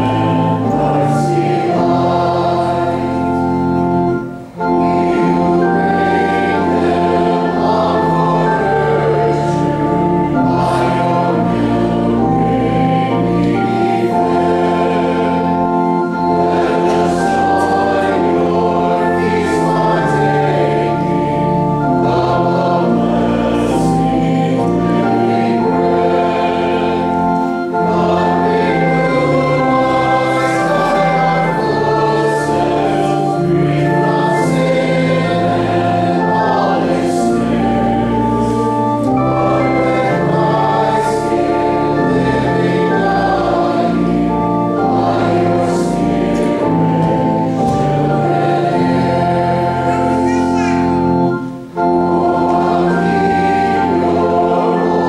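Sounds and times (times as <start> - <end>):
congregation singing a hymn: 0.0 - 55.0
pipe organ chords: 0.0 - 55.0.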